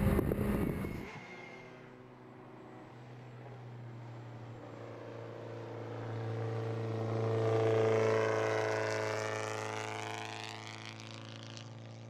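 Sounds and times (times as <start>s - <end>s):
race car passing at high revs: 0.0s - 12.0s.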